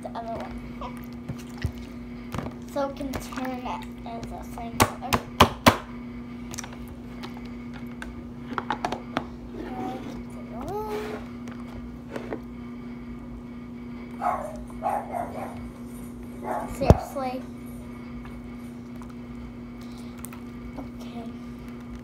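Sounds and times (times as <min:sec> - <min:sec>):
child vocal sounds: 0:09.7 - 0:11.2.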